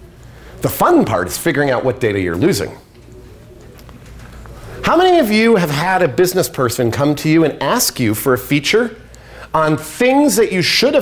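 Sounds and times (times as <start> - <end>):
low steady hum: 0.0 - 11.0
man's voice: 0.6 - 2.8, 4.8 - 11.0.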